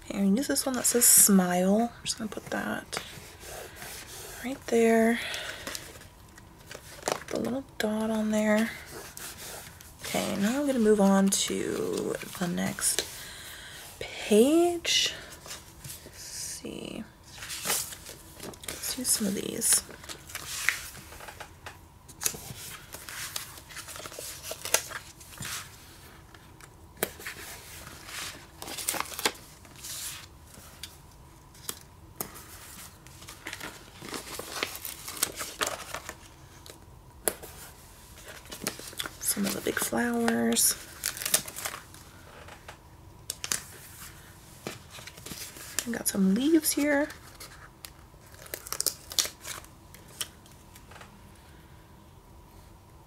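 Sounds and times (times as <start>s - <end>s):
paper crinkling and tearing: 22.2s - 25.8s, 27.0s - 30.9s, 31.5s - 42.0s, 46.9s - 50.3s.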